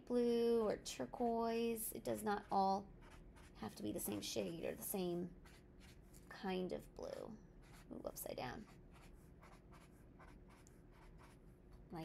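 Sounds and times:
marker scratching on paper: 0:02.1 - 0:06.2, 0:07.0 - 0:12.0.

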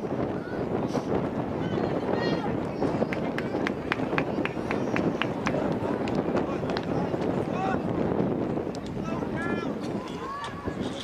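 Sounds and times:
outdoor field noise: 0:00.0 - 0:11.0.

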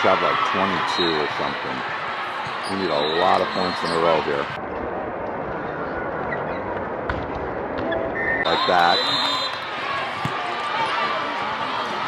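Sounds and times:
crowd noise and spectator voices: 0:00.0 - 0:12.0.

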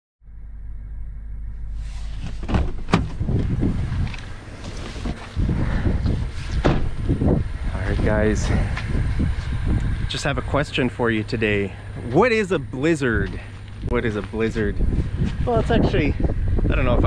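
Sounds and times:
low rumble inside truck cab: 0:00.2 - 0:17.0
gusty wind on microphone: 0:01.7 - 0:10.8, 0:13.2 - 0:17.0.

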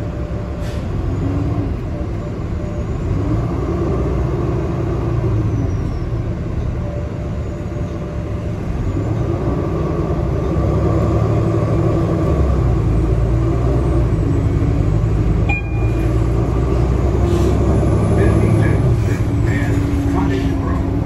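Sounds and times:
bus engine and road rumble: 0:00.0 - 0:21.0.

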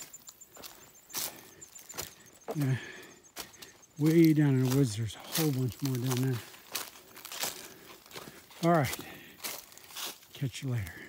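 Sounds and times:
footsteps on dry leaves: 0:00.0 - 0:11.0.

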